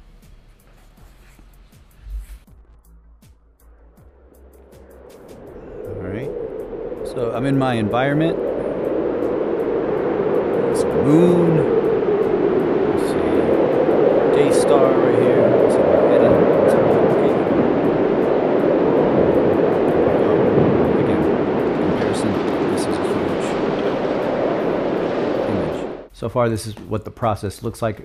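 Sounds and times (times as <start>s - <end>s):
low rushing drone: 3.7s - 26.1s.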